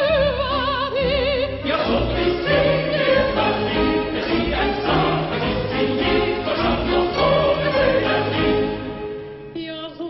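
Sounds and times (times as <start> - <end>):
soprano singing with vibrato: 0.0 - 8.8
chorus and orchestra: 0.0 - 10.0.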